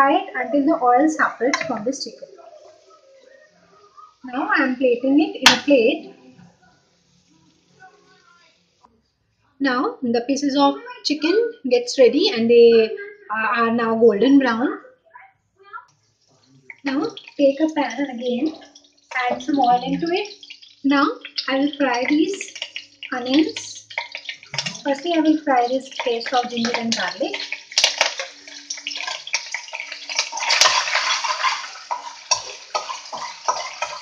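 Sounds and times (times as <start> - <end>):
oil heating hiss: 16.0 - 34.0
spatula clicking on pan: 16.7 - 34.0
metal spatula scraping plate: 26.0 - 34.0.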